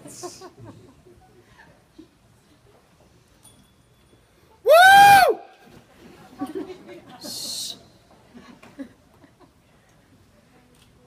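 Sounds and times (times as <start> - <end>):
audience member whooping: 4.7 - 5.4.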